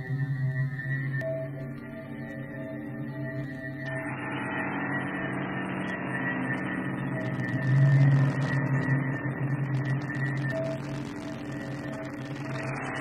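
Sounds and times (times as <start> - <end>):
droning ambient music: 0.0 - 13.0.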